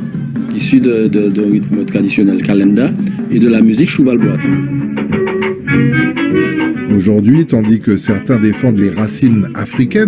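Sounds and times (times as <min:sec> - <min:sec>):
saxophone: 0:04.2 - 0:07.2
clarinet: 0:04.2 - 0:10.0.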